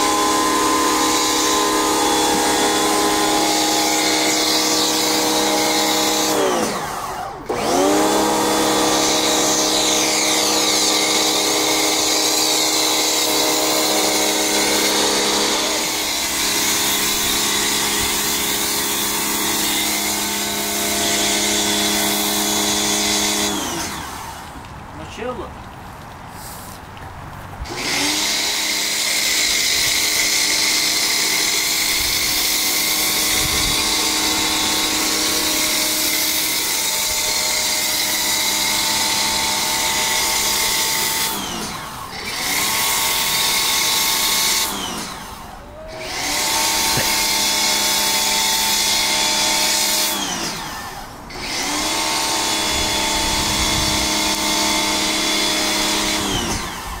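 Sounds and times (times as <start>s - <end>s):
pressure washer motor whine: 0.0s - 24.6s, 27.6s - 57.0s.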